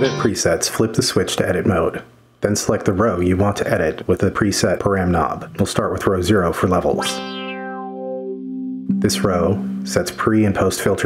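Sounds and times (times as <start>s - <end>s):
electric guitar chord with filter sweep: 6.9s - 10.3s.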